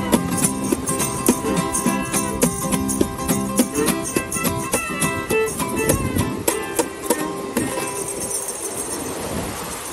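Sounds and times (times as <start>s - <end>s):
fiddle: 0.0s - 8.9s
acoustic guitar strumming: 0.0s - 9.2s
shaker: 0.0s - 9.2s
surf: 0.0s - 9.9s
wind: 0.0s - 9.9s.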